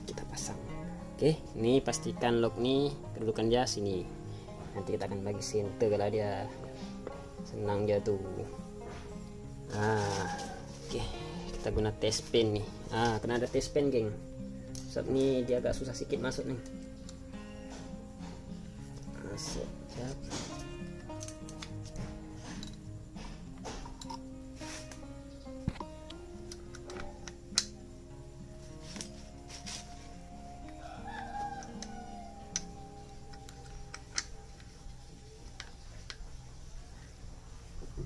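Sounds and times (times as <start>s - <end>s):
background music: 0.0s - 38.0s
rooster crowing: 10.1s - 10.8s, 30.2s - 34.5s.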